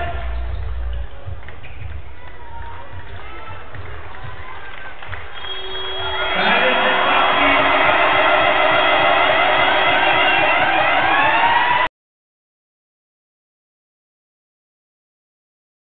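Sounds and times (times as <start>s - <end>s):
crowd cheering: 0.0s - 11.9s.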